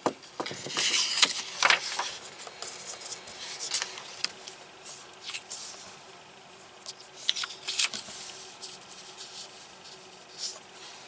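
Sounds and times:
hand brushing over paper: 4.8 - 6.0.

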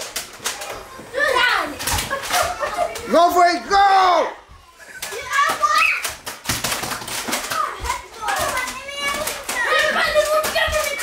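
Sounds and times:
excited children's voices: 0.0 - 11.0
toy blaster clicks and knocks: 5.0 - 11.0.

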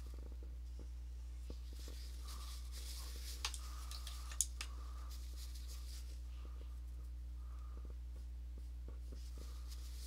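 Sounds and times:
low electrical hum: 0.0 - 10.0
faint scratchy strokes: 1.5 - 3.8, 9.0 - 10.0.

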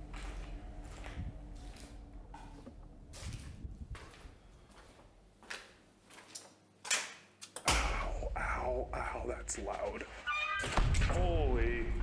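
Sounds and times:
low rumble: 0.0 - 4.6
footsteps: 0.0 - 7.0.

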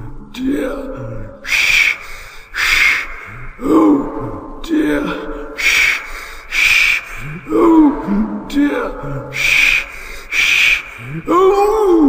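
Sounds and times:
man speaking: 0.0 - 12.0
man imitating steam engine puffs: 1.4 - 3.6, 5.6 - 7.5, 9.3 - 11.3.

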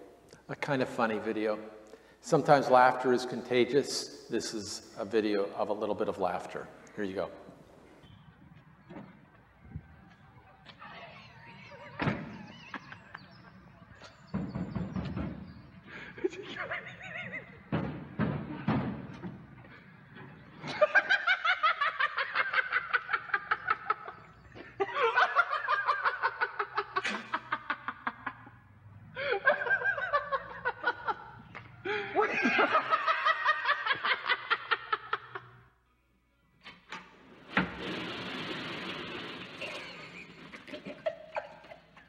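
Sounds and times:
faint low background noise: 0.0 - 37.3
dull thumps: 14.1 - 15.8, 17.6 - 19.7
person laughing hard: 15.9 - 17.7, 20.6 - 28.4, 29.2 - 31.3, 31.9 - 35.5, 39.6 - 42.0.

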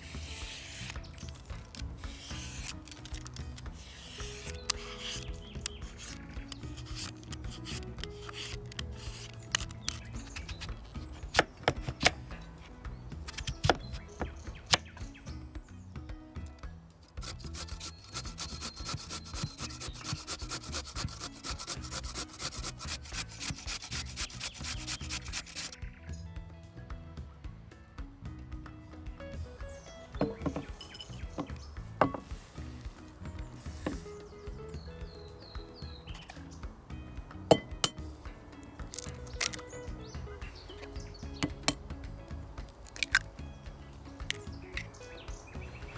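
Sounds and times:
soft background music: 0.0 - 45.9
squash rasping on metal grater: 2.0 - 10.7, 17.2 - 25.8
knife knocking on wooden board: 30.2 - 30.8, 31.4 - 32.3.

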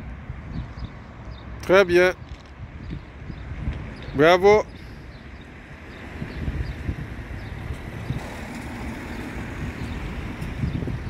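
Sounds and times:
distant traffic rumble: 0.0 - 11.0
wind noise on microphone: 0.0 - 11.0.

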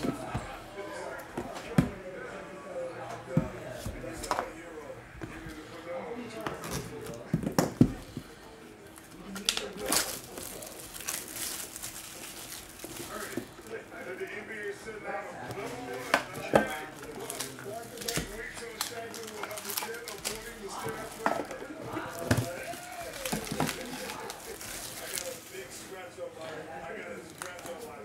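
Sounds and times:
plastic rustling: 6.6 - 14.4, 15.5 - 26.0, 27.2 - 28.0.

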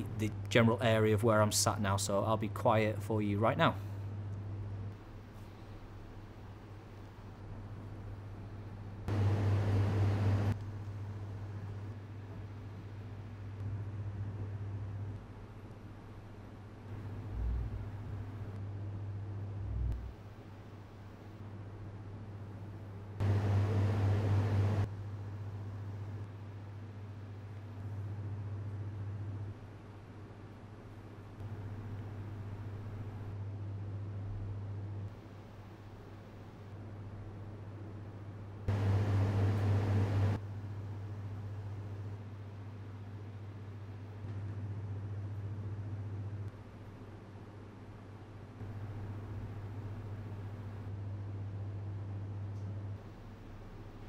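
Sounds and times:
air conditioning unit humming: 0.0 - 54.0.

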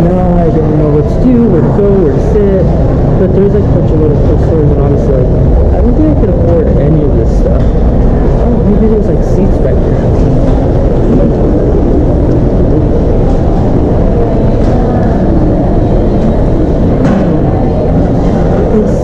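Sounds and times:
indistinct voices: 0.0 - 19.0
loud low rumble: 0.0 - 19.0.

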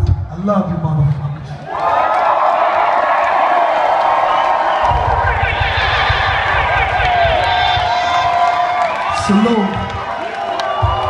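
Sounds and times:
crowd cheering and screaming: 1.6 - 11.0
concert music beat: 3.2 - 11.0.

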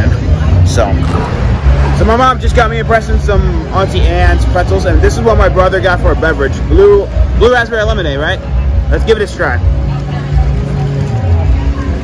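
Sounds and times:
faint background music: 0.0 - 12.0
low rumble: 0.8 - 4.2.

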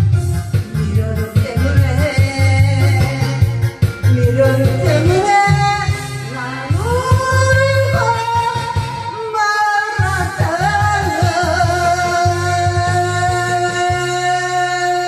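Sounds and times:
backing track with bass beat: 0.0 - 15.0
woman singing into microphone: 0.5 - 15.0.

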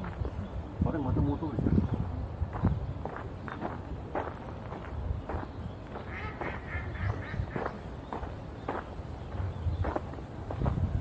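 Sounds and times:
footsteps on dirt path: 0.0 - 0.6, 1.8 - 11.0
ducks quacking: 6.0 - 7.9.

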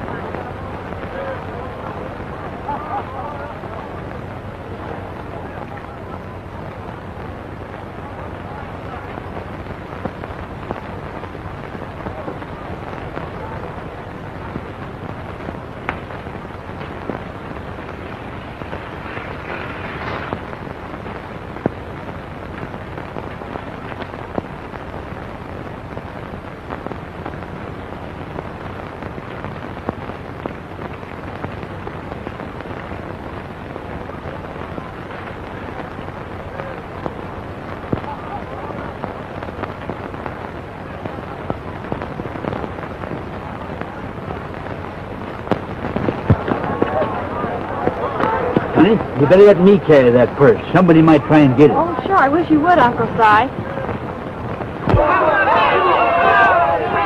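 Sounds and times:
film soundtrack hiss and crackle: 0.0 - 57.0.

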